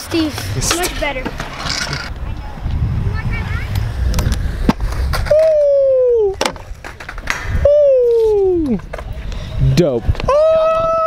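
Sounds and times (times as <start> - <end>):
scooter wheels rolling on concrete: 0.0 - 11.0
scooter deck knocks: 6.4 - 7.5.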